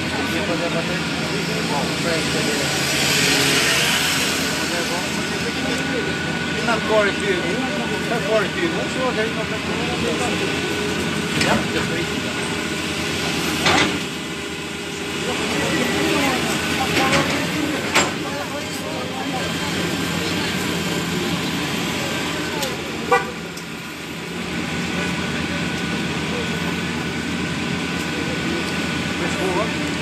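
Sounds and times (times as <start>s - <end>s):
people's voices: 0.0s - 30.0s
street traffic noise: 0.0s - 30.0s
vehicle horn toot: 23.0s - 23.5s.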